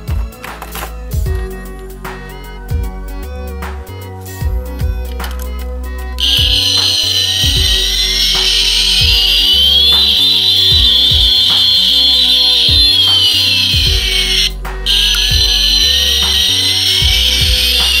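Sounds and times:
background music with steady beat: 0.0 - 18.0
toy jet engine sound effect: 6.2 - 18.0.

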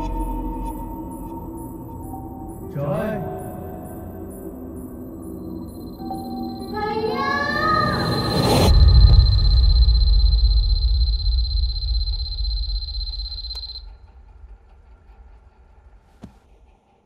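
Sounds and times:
high ringing tone: 0.0 - 13.9
child's voice rising in pitch: 6.7 - 8.2.

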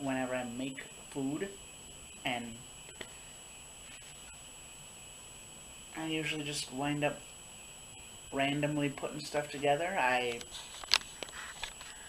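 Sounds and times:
high-pitched electronic whine: 0.0 - 12.0.

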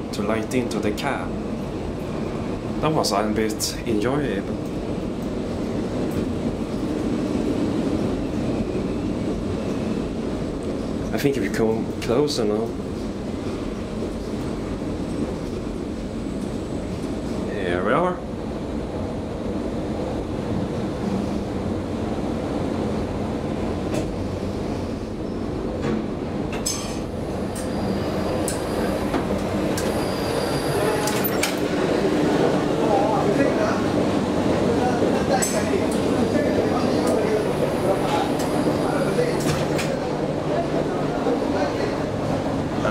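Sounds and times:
elevator running rumble: 0.0 - 42.9
short rising squeal: 29.8 - 31.5.

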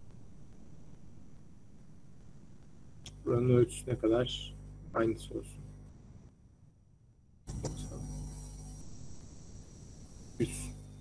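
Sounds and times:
low electrical hum and hiss: 0.0 - 11.0.

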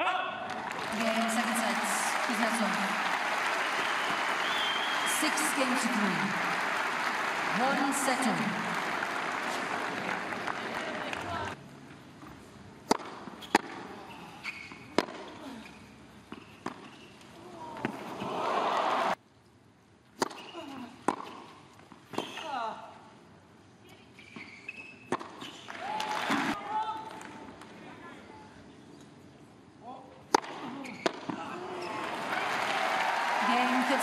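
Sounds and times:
crowd noise: 0.0 - 11.6, 31.5 - 34.0
crowd applause: 0.5 - 11.6, 18.3 - 19.2, 31.9 - 34.0
tennis ball hit by racket: 12.8 - 13.9, 15.0 - 15.3, 20.2 - 20.5, 25.1 - 25.4, 30.3 - 31.4.

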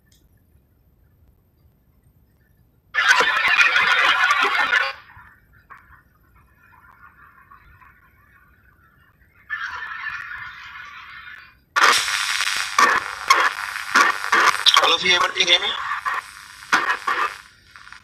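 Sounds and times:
harsh noise bursts from microphone: 9.5 - 18.0.

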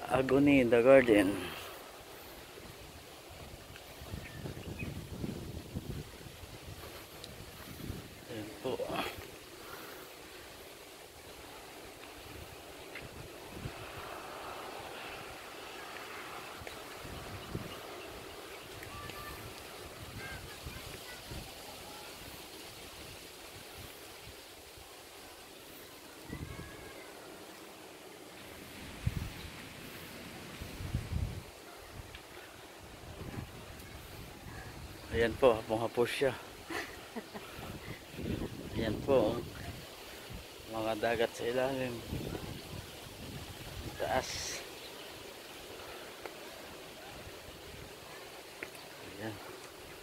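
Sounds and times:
soft hiss of wind: 0.0 - 50.0
wind buffeting microphone: 2.5 - 9.2, 12.2 - 14.5, 16.5 - 21.6, 28.7 - 35.3, 37.5 - 40.6, 42.0 - 44.5
faint clicks: 48.6 - 48.9.

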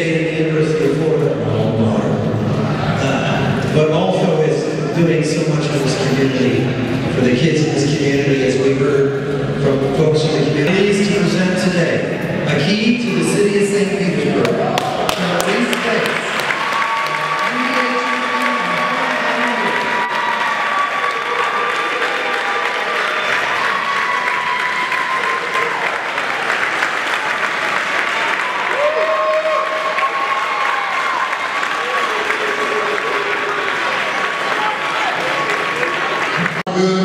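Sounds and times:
people cheering and calling out: 14.3 - 37.0
audience applauding: 14.4 - 36.6.

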